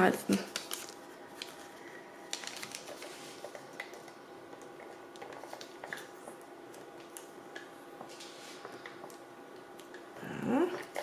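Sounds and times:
paper rustling: 0.4s - 3.8s.

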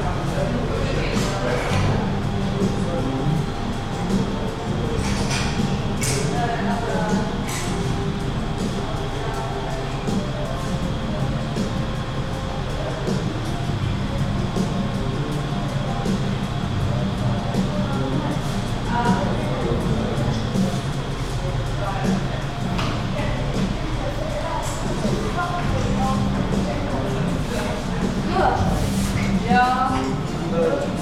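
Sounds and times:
background music: 0.0s - 31.0s
people talking indistinctly: 0.0s - 31.0s.

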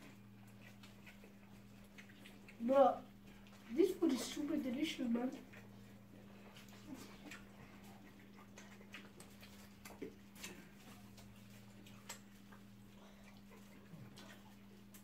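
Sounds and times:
people chewing and lip smacking: 0.0s - 15.0s
steady low hum: 0.0s - 15.0s
fingers on food and leaves: 6.4s - 15.0s.

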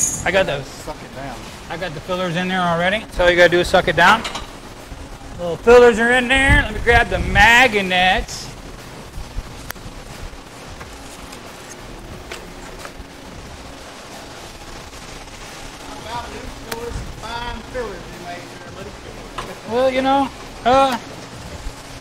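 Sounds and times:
shop background noise: 0.0s - 22.0s.

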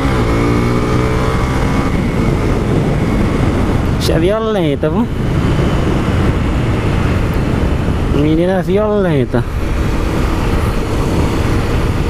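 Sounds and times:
motorcycle engine running: 0.0s - 12.0s
wind rush on microphone: 0.0s - 12.0s.

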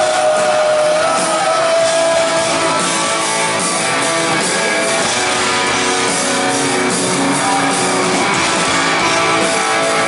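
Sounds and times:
punk rock band playing live: 0.0s - 10.0s.

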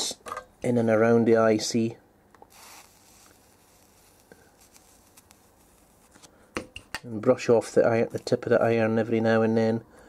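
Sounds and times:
faint hiss: 0.8s - 10.0s.

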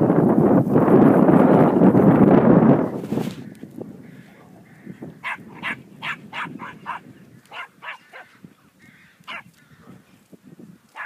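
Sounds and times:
dog barking: 5.2s - 8.4s, 9.3s - 10.0s.

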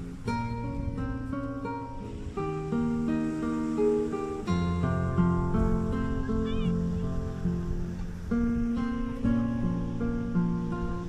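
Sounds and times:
strummed acoustic guitar music: 0.0s - 11.0s.

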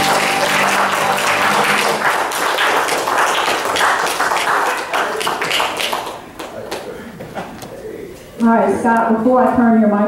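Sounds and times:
faint room noise: 0.0s - 10.0s
woman speaking: 8.4s - 10.0s.

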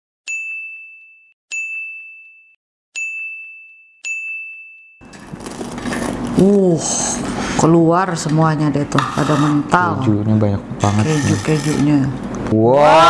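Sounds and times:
bell-like dings: 0.3s - 5.0s.

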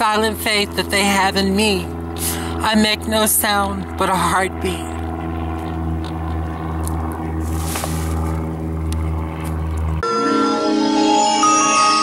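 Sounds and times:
low drone of held tones: 0.0s - 12.0s.

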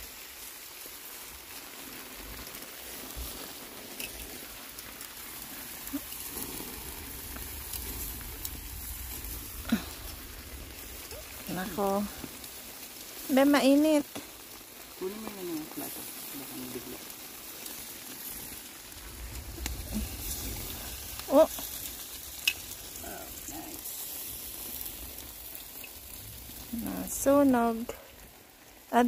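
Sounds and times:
light rain patter: 0.0s - 29.0s
water drips ticking: 0.8s - 23.7s, 24.6s - 29.0s
person humming: 15.0s - 15.9s.

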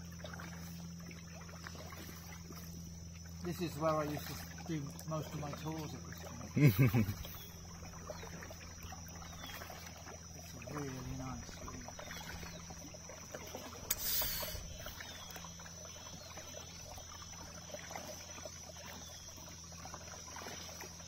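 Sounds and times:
paddle splashing water: 0.0s - 21.0s.

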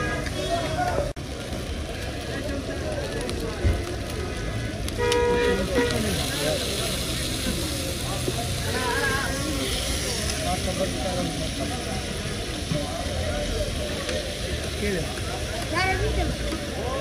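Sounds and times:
low rumble of traffic: 0.0s - 17.0s
people talking: 0.0s - 17.0s.

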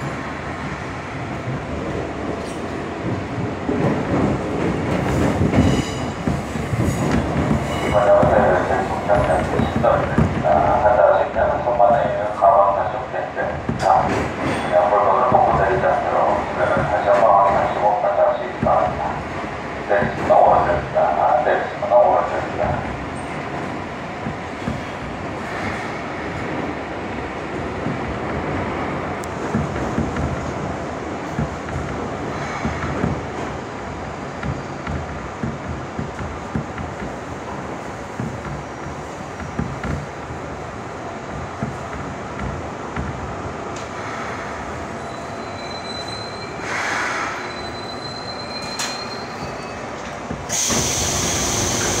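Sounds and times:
subway train wheel rumble: 0.0s - 52.0s
brake squeal: 45.0s - 52.0s
loud hiss of air: 46.6s - 47.4s, 50.5s - 52.0s.

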